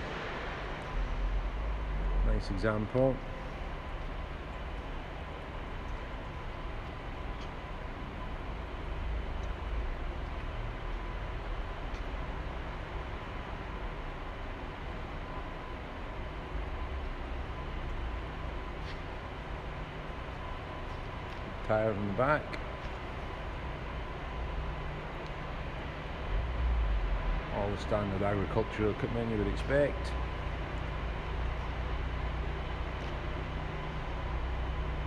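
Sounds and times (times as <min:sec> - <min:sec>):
faint steady whine: 0:00.0 - 0:35.0.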